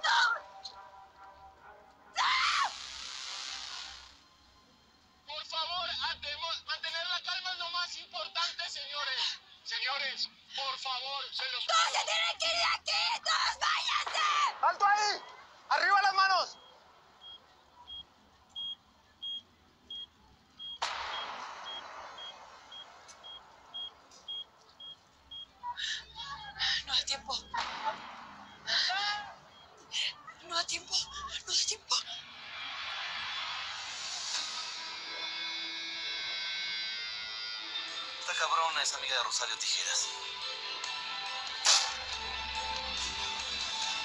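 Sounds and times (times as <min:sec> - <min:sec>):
high-pitched human scream: 0:02.2 - 0:02.8, 0:12.9 - 0:15.2
hissing noise: 0:02.5 - 0:04.4, 0:20.5 - 0:30.1, 0:31.0 - 0:38.1
sudden burst of noise: 0:20.6 - 0:25.6, 0:26.9 - 0:29.9, 0:32.1 - 0:38.1.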